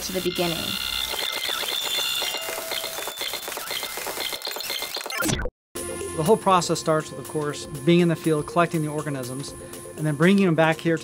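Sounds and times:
rapid ticking: 0.0 - 5.1
tape rewind whir: 0.0 - 6.6.

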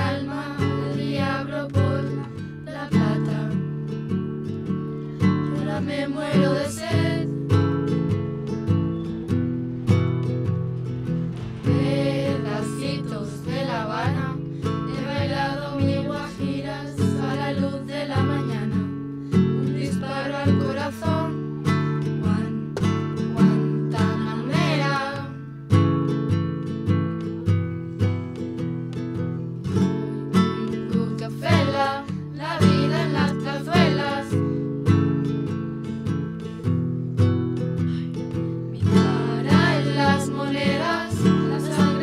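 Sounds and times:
young female voices singing: 0.0 - 3.8, 5.4 - 7.4, 11.5 - 22.6, 23.3 - 25.4, 30.6 - 34.6, 38.8 - 42.0
acoustic guitars strumming: 0.0 - 42.0.

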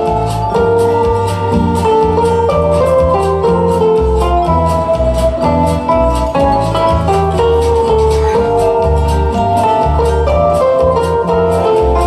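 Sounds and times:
acoustic guitar strumming: 0.0 - 12.0
bass notes: 0.0 - 12.0
held melody line: 0.0 - 12.0.

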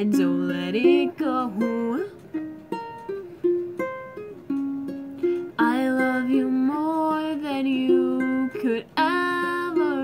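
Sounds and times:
ukulele plucked notes: 0.0 - 10.0.

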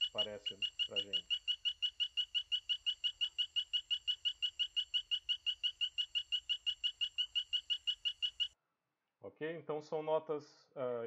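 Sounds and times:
frog calling high-pitched notes: 0.0 - 8.6.

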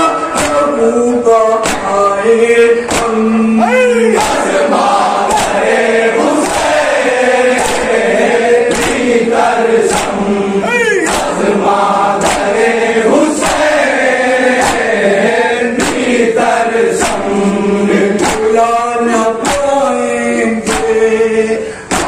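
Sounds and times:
men chanting a lament: 0.0 - 22.0
chest-beating slaps: 0.2 - 0.7, 1.6 - 2.0, 2.8 - 3.4, 4.2 - 10.2, 11.0 - 15.0, 15.7 - 16.2, 16.9 - 17.4, 18.1 - 18.6, 19.4 - 19.8, 20.6 - 21.0.

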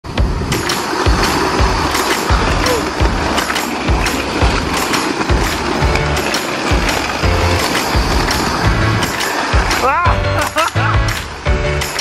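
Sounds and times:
low thumps: 0.0 - 11.8
riders sliding down a slide: 0.1 - 12.0.

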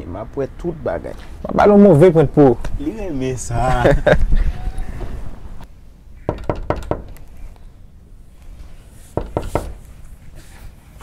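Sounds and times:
knocking on a door: 6.3 - 7.1, 9.2 - 9.7.

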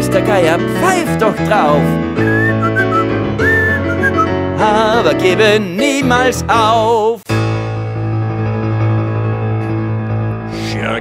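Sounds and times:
instrumental backing: 0.0 - 11.0
whistled tune: 2.2 - 4.5.

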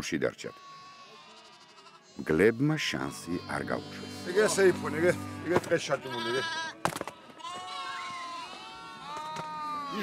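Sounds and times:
livestock bleating: 0.4 - 4.9, 5.8 - 10.0
person speaking: 2.2 - 6.4.

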